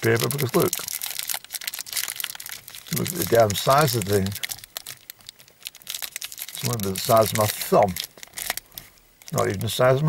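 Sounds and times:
plastic wrapper crinkling: 0.0s - 10.0s.

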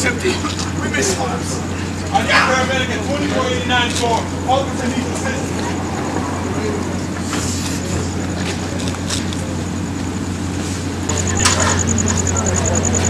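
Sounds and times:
faint voices talking: 0.0s - 13.0s
steady low motor hum: 0.0s - 13.0s
pulsing high-pitched tone: 11.1s - 13.0s.

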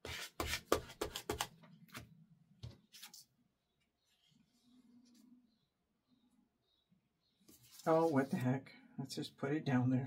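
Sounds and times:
faint paper scuffs: 7.4s - 8.5s.

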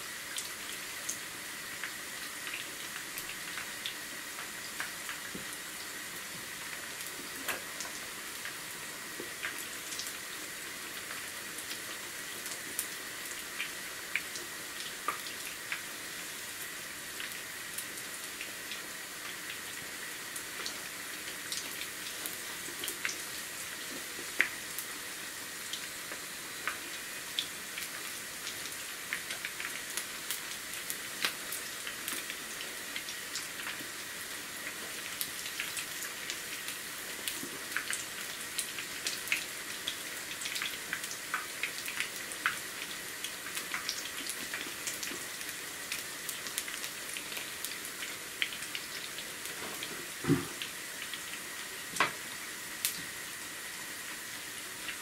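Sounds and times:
food deep-frying in oil: 0.0s - 55.0s.

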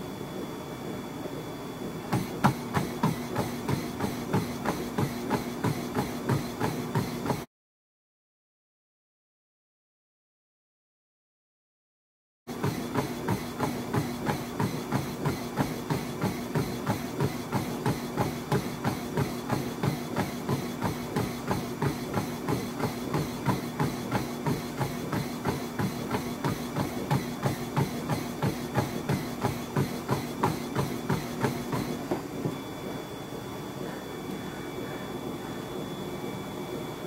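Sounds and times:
treadmill motor hum: 0.0s - 7.5s, 12.5s - 37.0s
running footfalls on treadmill: 2.0s - 7.5s, 12.5s - 32.6s.

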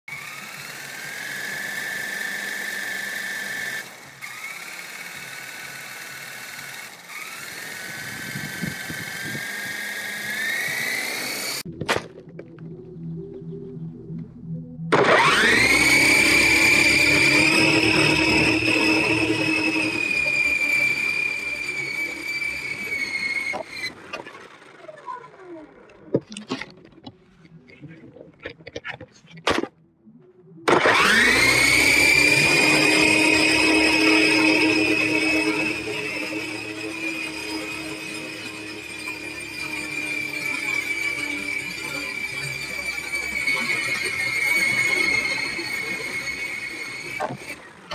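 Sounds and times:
helicopter motor whine: 0.1s - 11.7s, 12.6s - 29.4s, 30.5s - 47.9s.

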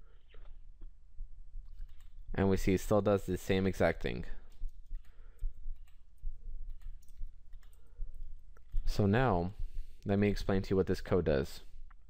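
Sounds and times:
low background hum: 0.0s - 12.0s
computer mouse clicks: 1.6s - 2.2s, 4.5s - 6.0s, 6.7s - 8.9s.

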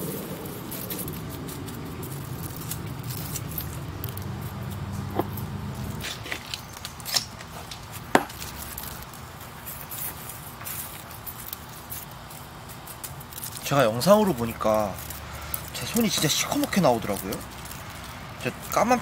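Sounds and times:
low steady hum: 0.0s - 19.0s
soil rustling and scraping: 0.0s - 19.0s.

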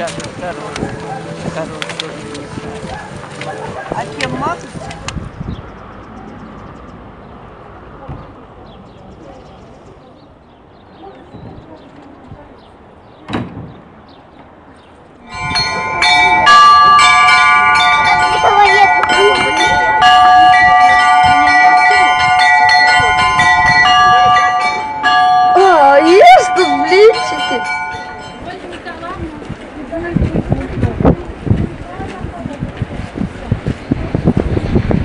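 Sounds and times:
voices: 0.0s - 5.3s, 7.6s - 13.7s, 15.2s - 34.6s
church bells ringing: 15.2s - 29.1s.

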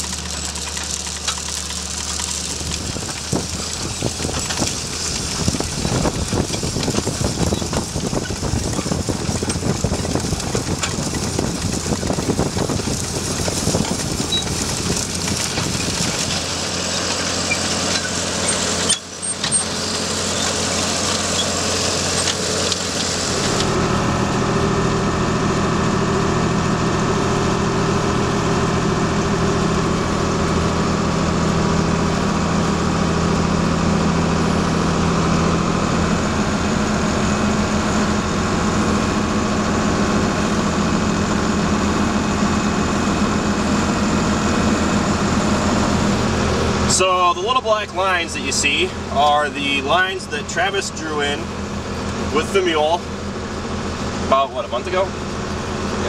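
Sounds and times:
tractor engine drone in cab: 0.0s - 56.0s
planter hissing rush: 36.6s - 56.0s.

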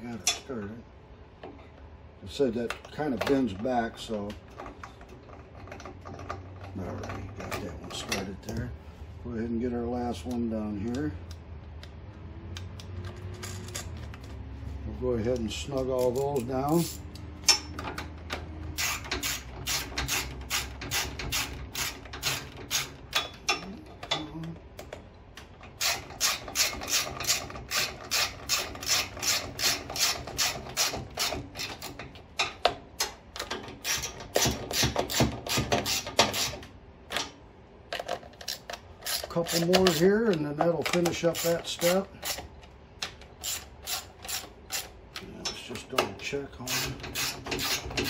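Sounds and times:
hand ratchet clicking: 18.7s - 23.6s, 25.7s - 36.6s, 38.4s - 46.0s.

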